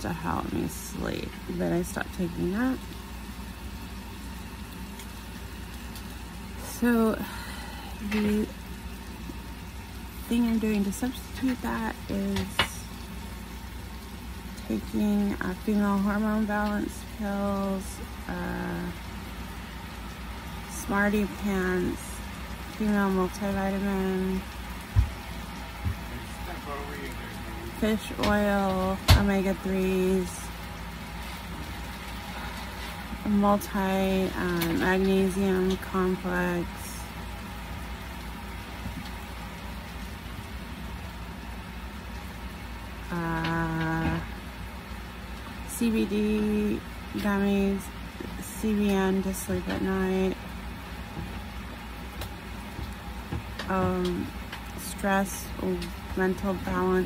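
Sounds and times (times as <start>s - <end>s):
low hum with hiss: 0.0s - 57.0s.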